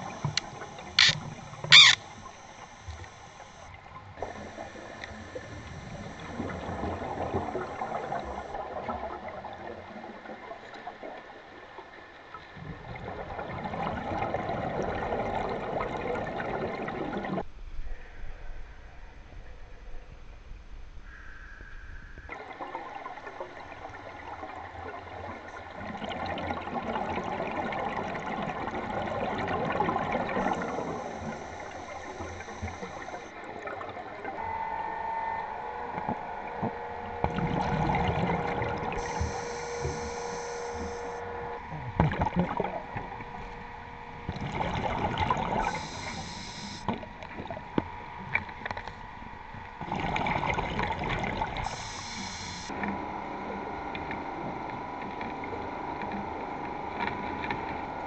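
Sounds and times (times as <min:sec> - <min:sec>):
underwater exhaust bubbles: 0:00.0 - 0:17.5, 0:22.3 - 0:58.0
breathing gas hiss: 0:38.9 - 0:41.2, 0:45.6 - 0:46.9, 0:51.6 - 0:52.7.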